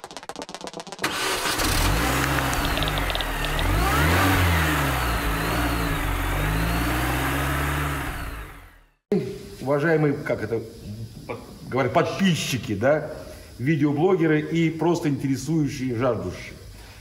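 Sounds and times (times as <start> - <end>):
car engine starting and revving: 1.0 - 9.0.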